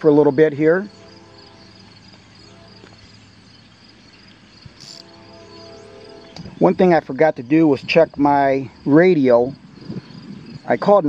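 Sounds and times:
low steady hum: 0.0 - 8.8
high pulsing trill: 4.6 - 7.0.

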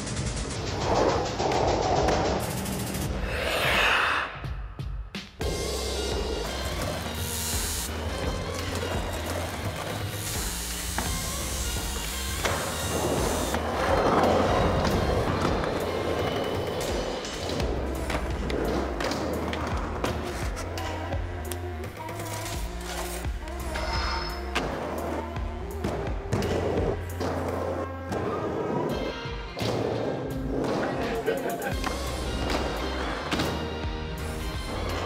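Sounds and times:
music with steady bass: 4.9 - 16.2, 16.9 - 27.9, 31.2 - 35.0
skateboard wheels on steel plates: 5.4 - 35.0.

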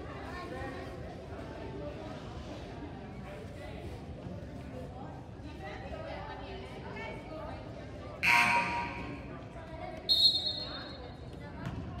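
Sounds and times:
shrill referee whistle: 8.2 - 9.2, 10.1 - 11.0.

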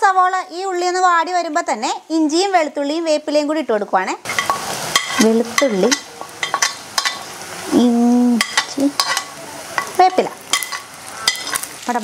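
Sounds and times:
onions sizzling in hot oil: 0.0 - 12.0
spoon scraping against pot: 4.3 - 7.3, 8.4 - 11.7.

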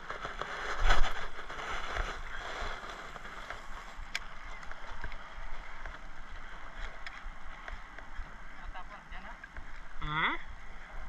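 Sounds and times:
water noise: 0.0 - 11.0
wind noise: 0.0 - 11.0.

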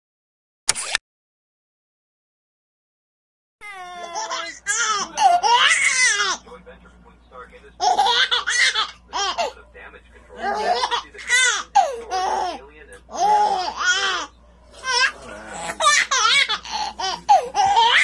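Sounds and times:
baby laughing: 3.6 - 6.5, 7.8 - 9.6, 10.4 - 18.0.

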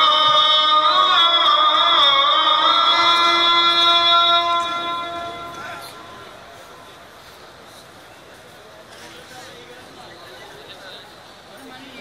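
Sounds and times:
man chanting call to prayer: 0.0 - 6.6.

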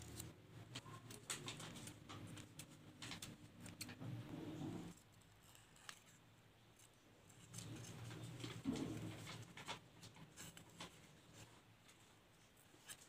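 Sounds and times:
scissors snipping paper: 0.0 - 4.0.

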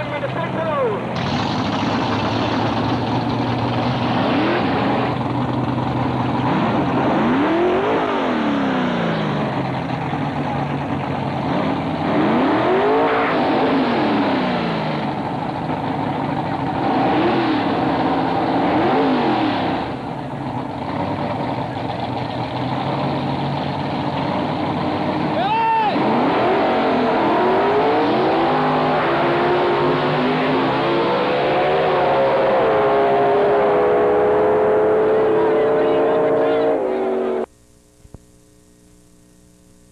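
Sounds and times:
race car engines revving: 0.0 - 37.5
car accelerating away: 1.1 - 37.5.

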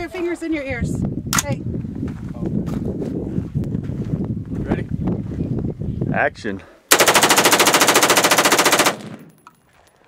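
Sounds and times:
automatic rifle burst: 6.9 - 9.4.

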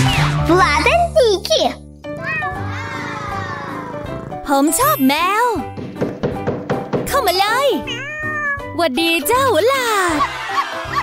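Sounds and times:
cat meowing: 2.2 - 4.4, 7.8 - 8.8.

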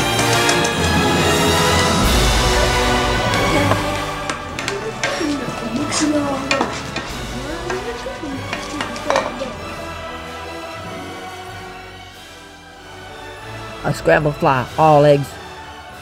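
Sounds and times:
fork scraping eggs in pan: 3.8 - 9.6.

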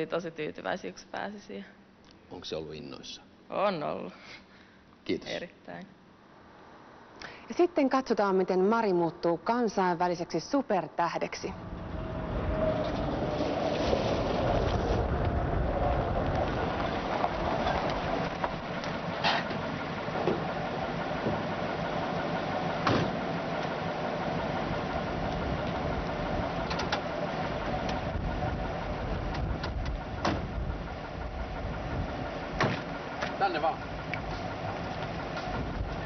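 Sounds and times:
car engine running: 11.6 - 36.0
sharp engine knocks: 17.2 - 20.6, 21.2 - 21.6, 22.7 - 23.8, 27.8 - 36.0.

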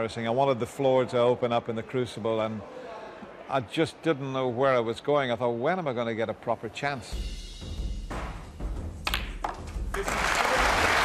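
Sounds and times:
crowd applauding: 9.5 - 11.0.

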